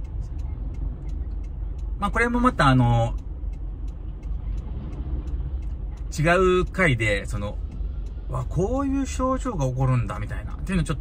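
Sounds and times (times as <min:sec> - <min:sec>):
car engine idling: 0:00.0 - 0:11.0
faint light ticks: 0:00.0 - 0:11.0.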